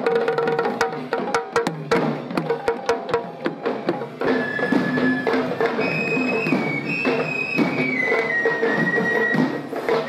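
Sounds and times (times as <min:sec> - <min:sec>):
drums beaten in fast rhythm: 0:00.0 - 0:10.0.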